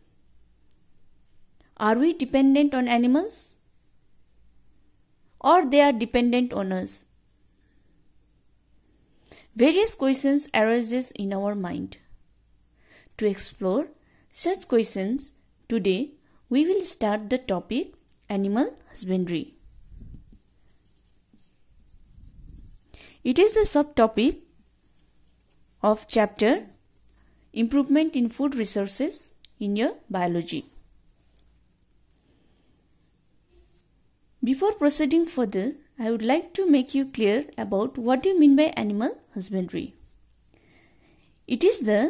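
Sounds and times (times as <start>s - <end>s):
woman speaking: 1.8s - 3.6s, 5.4s - 7.1s, 9.6s - 12.0s, 13.2s - 19.6s, 23.2s - 24.5s, 25.8s - 26.8s, 27.5s - 30.8s, 34.4s - 40.0s, 41.5s - 42.0s.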